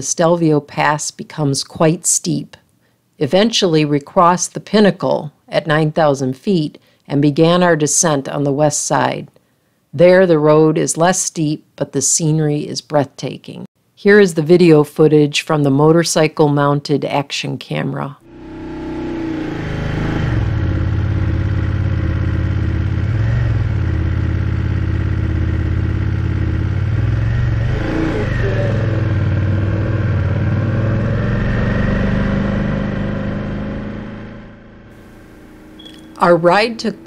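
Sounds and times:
motorcycle engine running: 18.2s - 37.0s.

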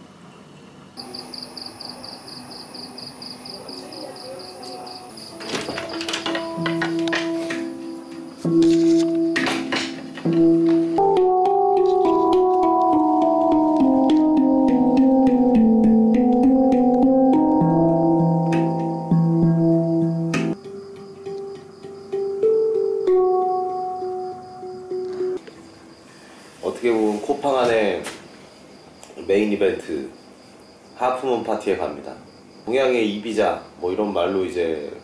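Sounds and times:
high continuous insect trill: 0.4s - 35.0s
insect chirp pulsing: 1.0s - 35.0s
handpan notes ringing: 6.3s - 25.4s.

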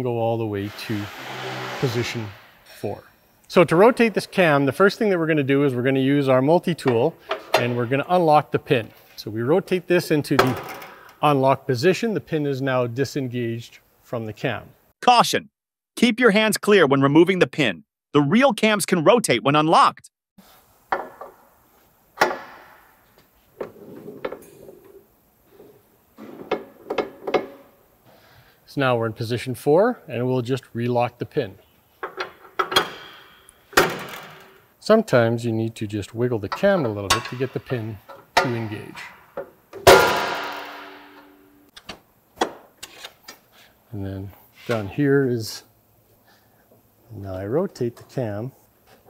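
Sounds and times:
sharp metal clank: 39.8s - 41.6s.

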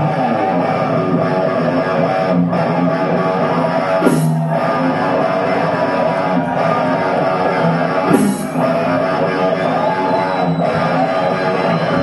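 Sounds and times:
distorted electric guitar riff: 0.0s - 12.0s
hard rock band playing: 0.0s - 12.0s.

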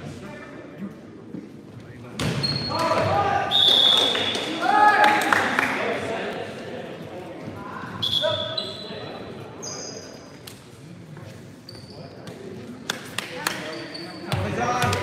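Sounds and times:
players' voices: 0.0s - 15.0s
sneakers squeaking on floor: 2.2s - 4.3s, 7.7s - 10.4s, 11.2s - 12.6s, 13.5s - 15.0s.

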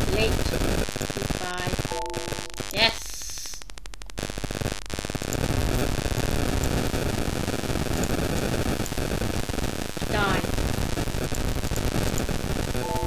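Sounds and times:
mains hum: 0.0s - 13.0s
static hiss: 0.0s - 13.0s.

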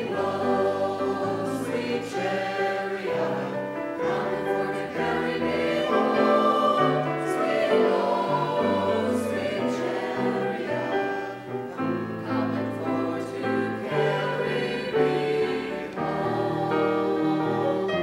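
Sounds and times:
church choir singing: 0.0s - 18.0s.

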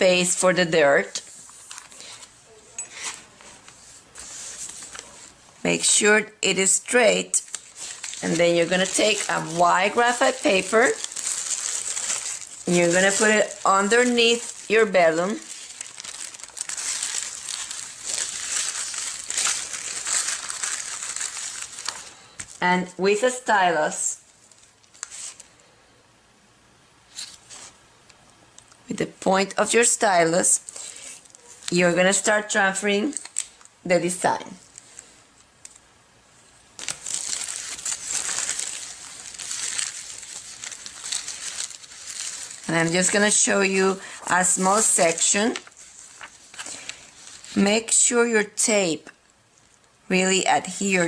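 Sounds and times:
paper rustling and crinkling: 1.2s - 5.4s, 6.9s - 22.6s, 24.3s - 25.5s, 30.6s - 32.1s, 33.1s - 33.7s, 36.8s - 47.6s.

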